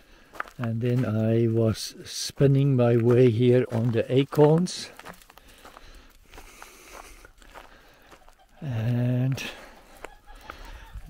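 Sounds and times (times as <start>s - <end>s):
footsteps on dry leaves: 2.3s - 10.8s.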